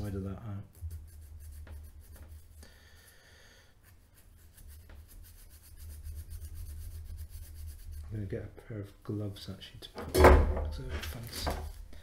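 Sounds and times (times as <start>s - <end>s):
sandpaper scratching metal: 0.0s - 3.1s, 3.8s - 8.4s.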